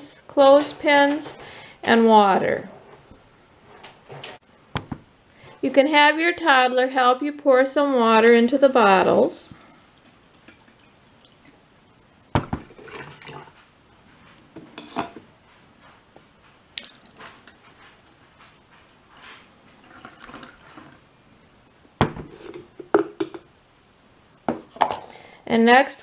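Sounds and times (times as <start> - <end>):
water trickling and dripping: 8.2 - 11.6, 19.8 - 20.7
water pouring through a funnel: 12.6 - 13.6, 19.8 - 21.0.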